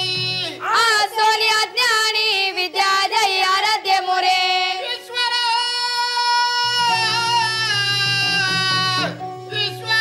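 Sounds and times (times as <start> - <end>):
person singing devotional song: 0.0 - 10.0.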